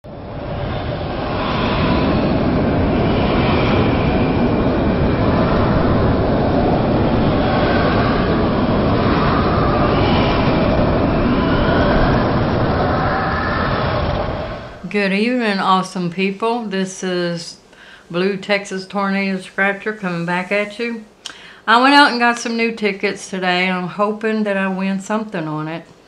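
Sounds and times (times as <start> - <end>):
tornado wind roaring: 0.0 - 16.7.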